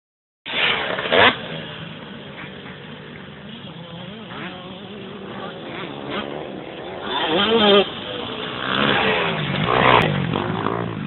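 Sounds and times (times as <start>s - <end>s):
motorcycle engine revving: 0.5s - 11.0s.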